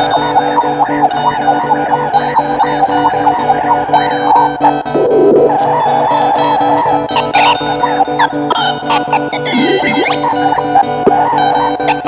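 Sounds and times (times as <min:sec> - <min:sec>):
experimental electric guitar: 0:00.0 - 0:12.0.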